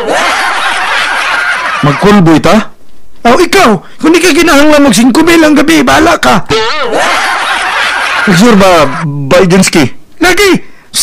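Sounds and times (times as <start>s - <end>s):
many people laughing: 0.0s - 2.3s, 6.6s - 9.0s
person speaking: 8.2s - 11.0s.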